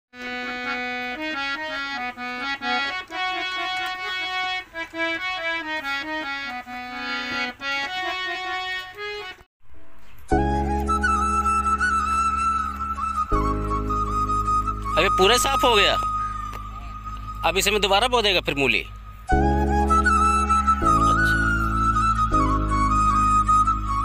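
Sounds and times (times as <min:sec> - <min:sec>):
harmonium playing melody: 0:00.1 - 0:24.0
wavering high melody: 0:10.0 - 0:24.0.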